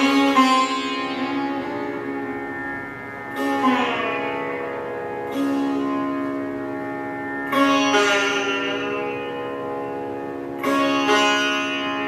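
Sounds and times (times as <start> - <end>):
sitar plucked strokes ringing: 0.0 - 12.0.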